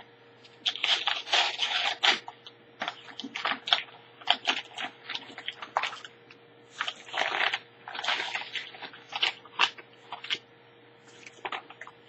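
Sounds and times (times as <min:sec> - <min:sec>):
paper mailer crinkling: 0:00.6 - 0:06.1, 0:06.7 - 0:10.4, 0:11.1 - 0:12.0.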